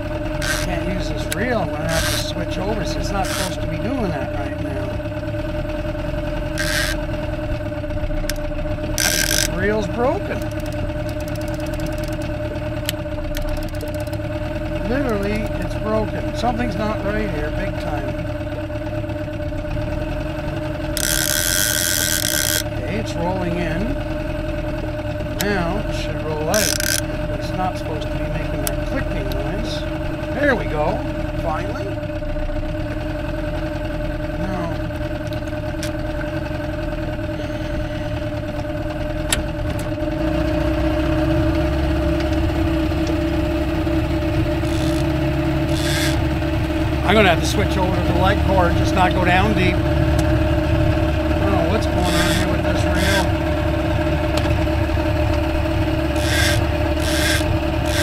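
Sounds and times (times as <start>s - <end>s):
outboard motor running: 0.0s - 58.0s.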